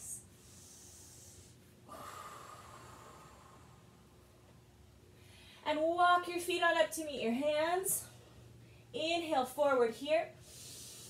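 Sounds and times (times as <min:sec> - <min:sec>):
breathing through the nose: 0:10.4 - 0:11.0.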